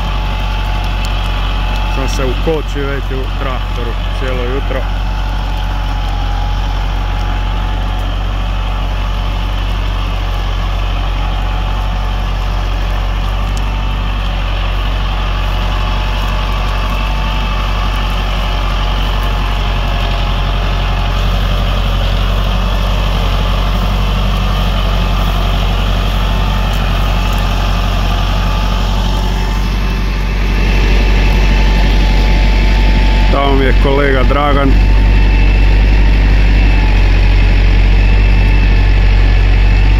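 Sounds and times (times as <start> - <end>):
heavy low rumble: 0.0 - 39.9
tractor diesel engine running: 0.0 - 39.9.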